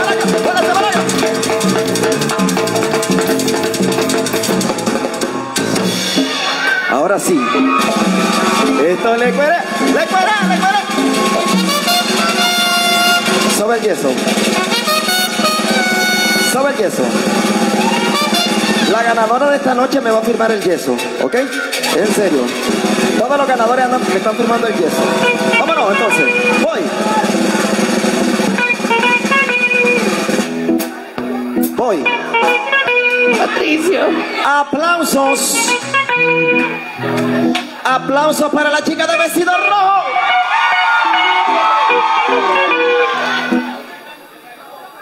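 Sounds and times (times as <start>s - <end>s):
electric guitar chords: 0.0s - 20.4s, 21.0s - 34.4s, 35.1s - 44.0s
drum and percussion beat: 0.0s - 34.2s
held brass notes: 7.7s - 20.4s, 21.0s - 34.4s, 35.3s - 37.6s, 39.2s - 44.4s.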